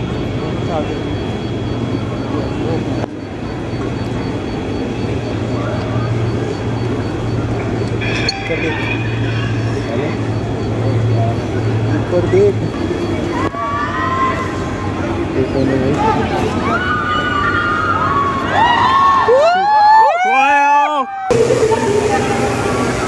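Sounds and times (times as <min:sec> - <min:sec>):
drone rotors humming: 0:00.0 - 0:18.5, 0:21.3 - 0:23.0.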